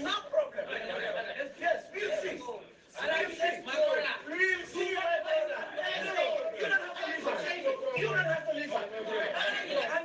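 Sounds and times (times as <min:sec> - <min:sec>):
people talking: 0:03.0 - 0:10.0.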